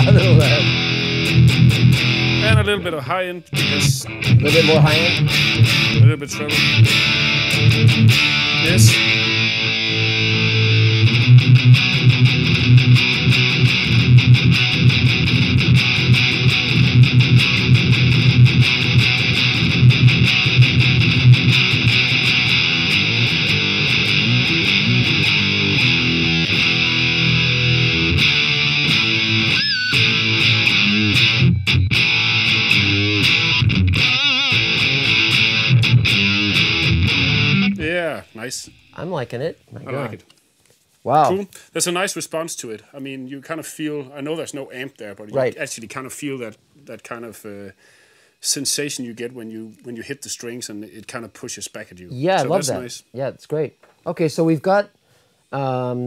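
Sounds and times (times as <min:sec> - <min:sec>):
distorted electric guitar riffing: 0:00.0 - 0:38.9.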